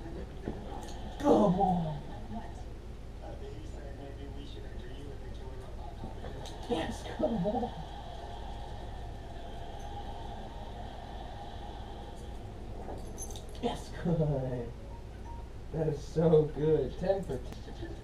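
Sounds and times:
television voices murmuring: 0:00.0 - 0:18.0.

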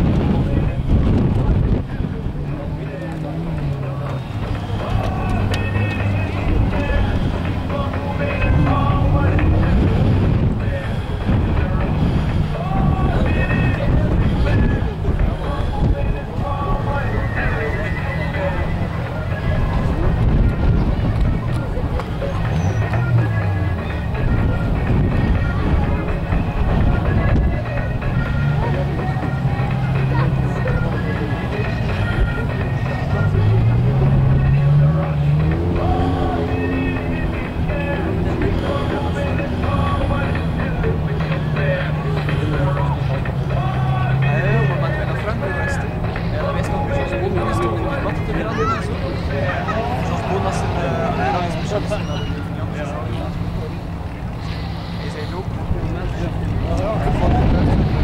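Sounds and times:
car engines rumbling: 0:00.0 - 0:58.0
engine note rising: 0:00.0 - 0:58.0
indistinct voices: 0:00.0 - 0:58.0
music: 0:00.0 - 0:58.0.

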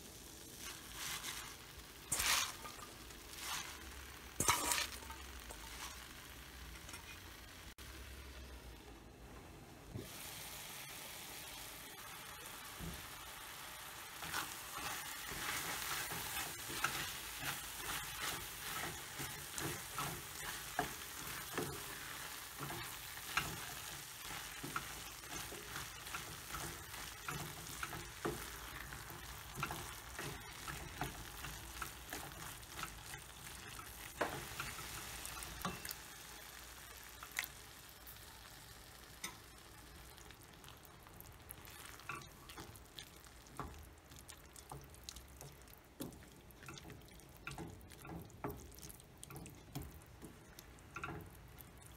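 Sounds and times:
food sizzling in a pan: 0:00.0 - 0:08.9, 0:09.9 - 0:51.9
wooden spoon scraping and knocking pan: 0:00.6 - 0:06.1, 0:14.2 - 0:35.9.

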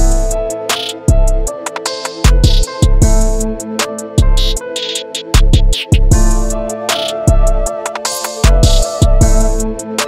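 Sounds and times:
dark melody: 0:00.0 - 0:10.0
drum machine hits and hi-hats: 0:00.0 - 0:10.0.

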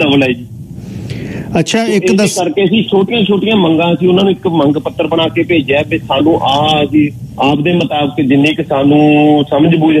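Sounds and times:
man talking over telephone: 0:01.5 - 0:10.0.

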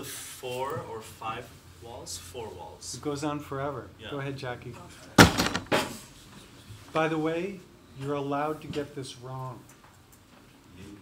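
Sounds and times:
sharp knocks: 0:05.2 - 0:05.9.

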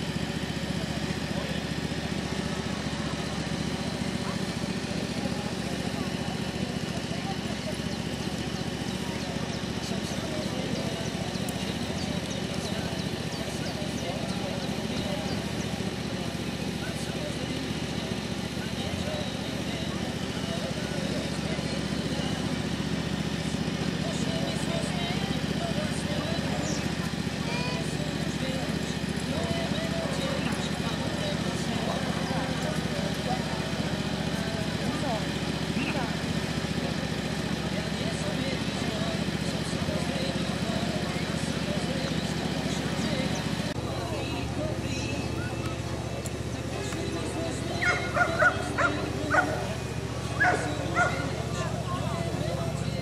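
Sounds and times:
group of people talking: 0:00.0 - 0:53.0.

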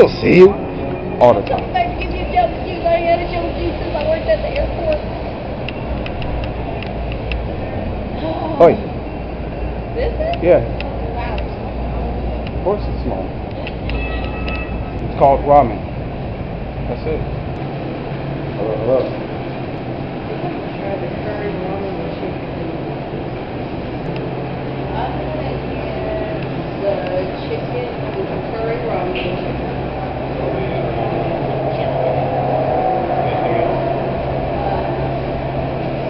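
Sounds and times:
indistinct voices: 0:00.0 - 0:36.0
low street rumble: 0:00.0 - 0:36.0
steady low hum: 0:00.0 - 0:36.0.

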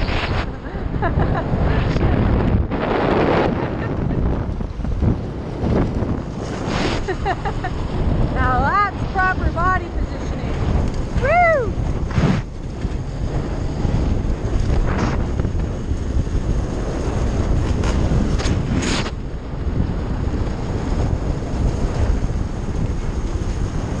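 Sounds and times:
dirt bike engine running: 0:00.0 - 0:24.0
wind buffeting microphone: 0:00.0 - 0:24.0.

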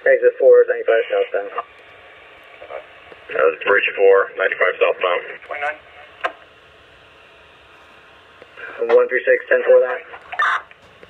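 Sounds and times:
faint radio channel hiss: 0:00.0 - 0:11.0
police radio chirp: 0:08.6 - 0:10.7.

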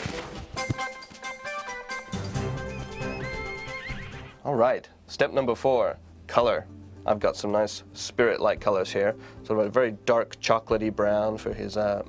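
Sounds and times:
film music: 0:00.0 - 0:04.5
horse whinnying: 0:02.6 - 0:04.4
man speaking: 0:04.4 - 0:12.0.

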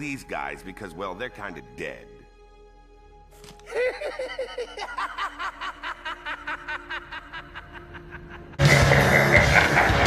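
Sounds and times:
man cackling laugh: 0:03.7 - 0:10.0.

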